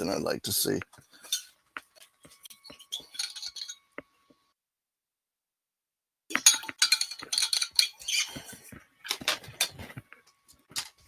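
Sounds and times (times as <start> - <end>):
small hard objects clinking: 6.3 - 8.4.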